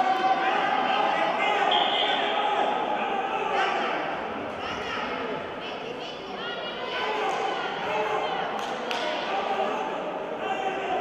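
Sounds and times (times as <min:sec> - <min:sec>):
voices calling out in hall: 0:00.0 - 0:11.0.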